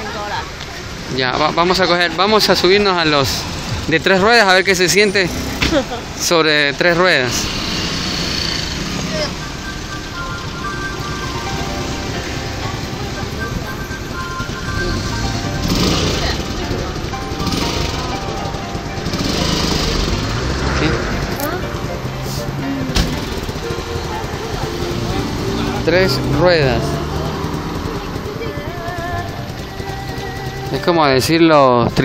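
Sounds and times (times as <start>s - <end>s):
car engines running: 0.0s - 32.0s
voices: 0.0s - 32.0s
music playing: 1.6s - 32.0s.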